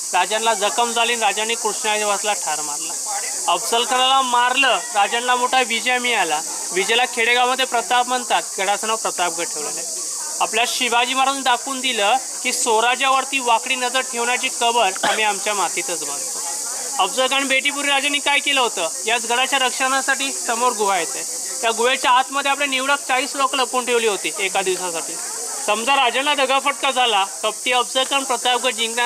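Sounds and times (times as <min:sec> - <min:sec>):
steady high hiss: 0:00.0 - 0:29.0
man speaking: 0:00.1 - 0:16.3.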